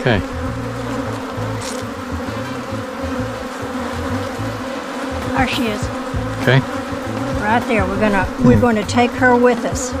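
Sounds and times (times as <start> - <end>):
bees buzzing: 0.0 - 10.0.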